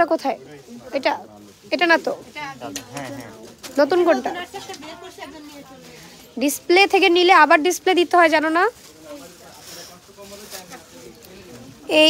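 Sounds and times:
woman's voice: 3.8s - 8.7s.

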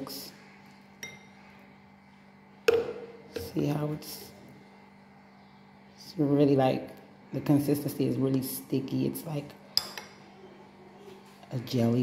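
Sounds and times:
spoon tapping ceramic bowl: 9.8s - 10.2s.

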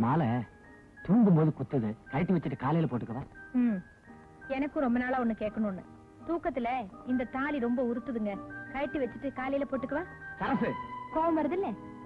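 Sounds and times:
soft background music: 0.0s - 12.0s
woman speaking: 4.5s - 10.1s, 11.1s - 11.8s.

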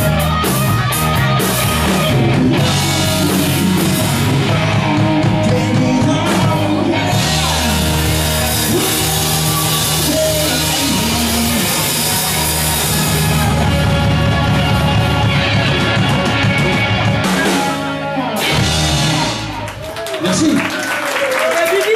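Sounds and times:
rock band playing loud: 0.0s - 21.9s.

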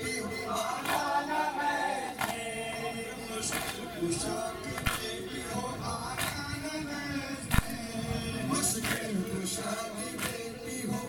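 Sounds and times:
men chanting a lament: 0.0s - 11.0s.

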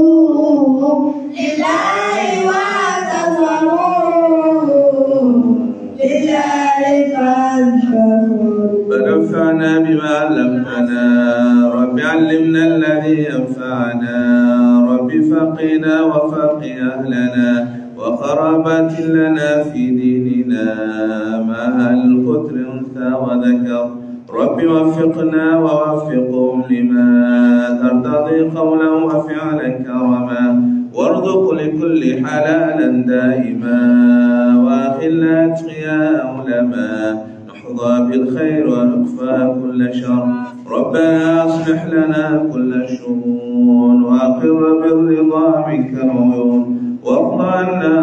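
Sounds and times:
man chanting: 0.0s - 48.0s.

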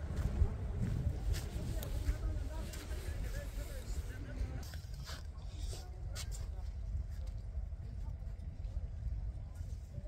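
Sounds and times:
faint voices talking: 0.0s - 10.0s
wind rumbling on microphone: 0.0s - 10.0s.

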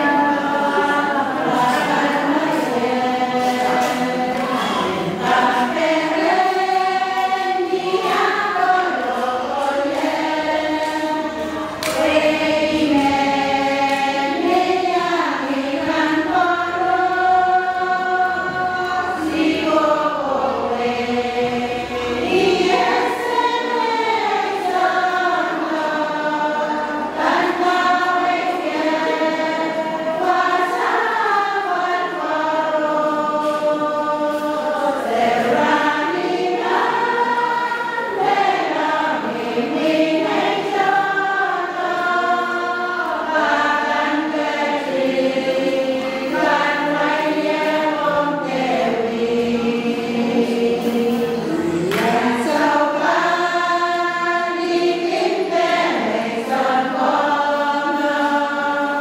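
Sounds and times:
women singing a hymn: 0.0s - 59.0s.

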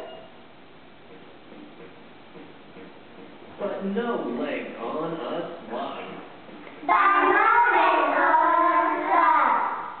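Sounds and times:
young children singing: 6.8s - 10.0s.

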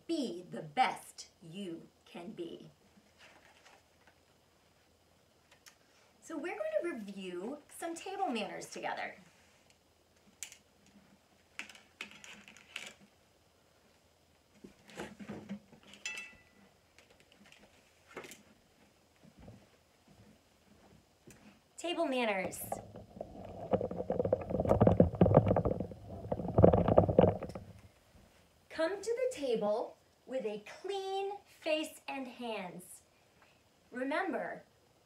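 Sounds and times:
paper and book rustling: 3.0s - 4.2s, 14.6s - 16.0s
handling noise on microphone: 14.5s - 21.7s, 22.3s - 28.4s.

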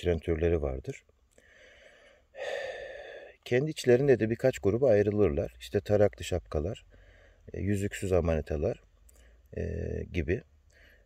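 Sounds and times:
man breathing in through mouth: 1.4s - 3.4s.

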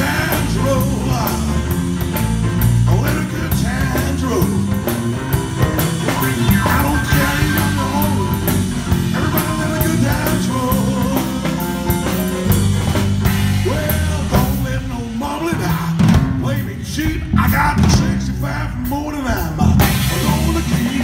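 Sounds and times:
man singing: 0.0s - 12.3s, 13.2s - 21.0s
drum kit beat: 0.0s - 21.0s
electric bass: 0.0s - 21.0s
stage piano: 0.0s - 21.0s.

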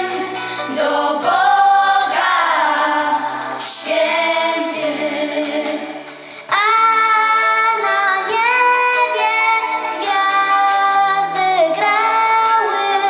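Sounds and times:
girls singing a carol: 0.0s - 6.0s.

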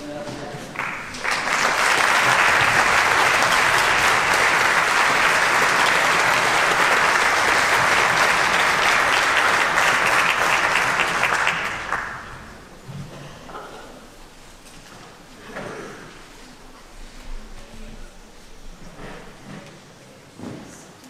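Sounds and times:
audience applauding: 0.6s - 12.8s.

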